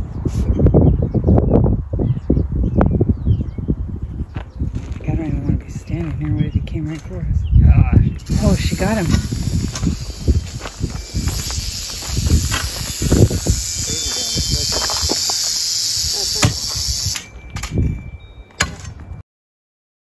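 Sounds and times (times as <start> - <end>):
rattlesnake rattling: 8.2 - 17.4
excited voices: 11.5 - 16.8.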